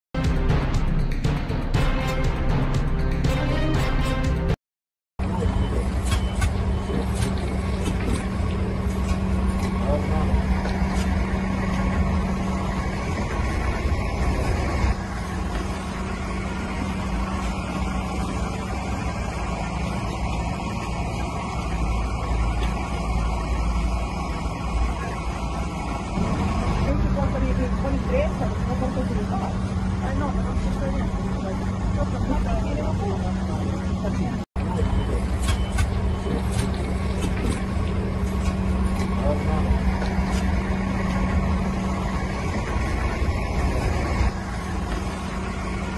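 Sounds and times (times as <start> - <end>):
voices talking: 5.2 - 12.7, 26.7 - 42.6
bus engine idling: 5.2 - 45.9.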